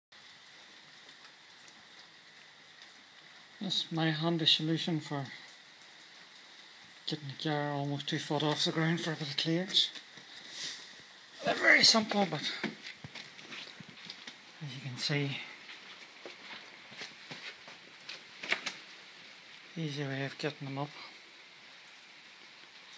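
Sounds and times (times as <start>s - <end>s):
faint room hiss: 0.2s - 22.9s.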